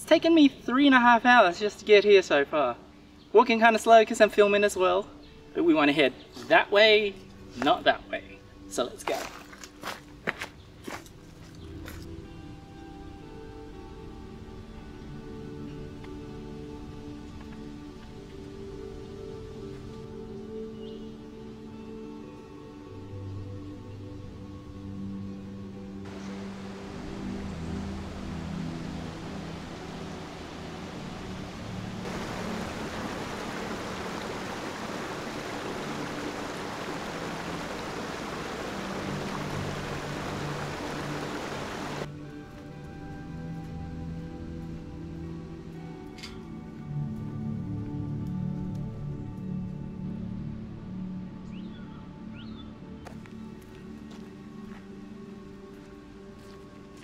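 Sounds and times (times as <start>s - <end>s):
soft background music: 0.0s - 57.0s
creek water running: 26.1s - 43.8s.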